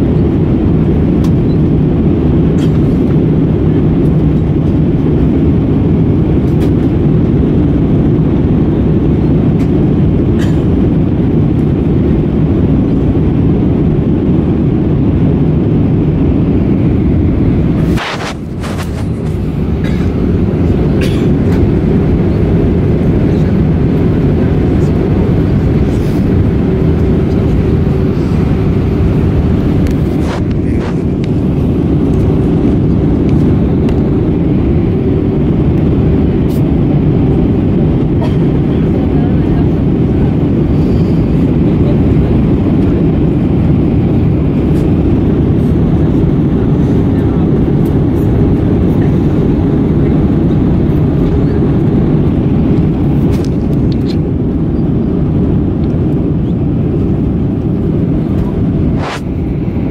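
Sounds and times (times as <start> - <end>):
jet cabin engine and airflow noise: 0.0 - 59.9.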